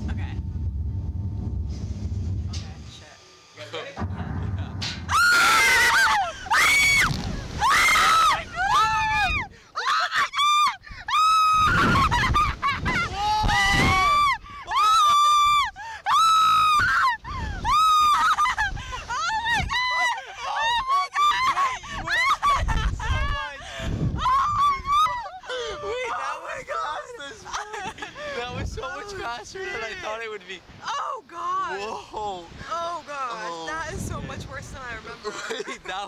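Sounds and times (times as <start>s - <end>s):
riders screaming: 5.1s - 12.1s
shrieks of laughter: 5.4s - 13.4s, 14.1s - 23.4s.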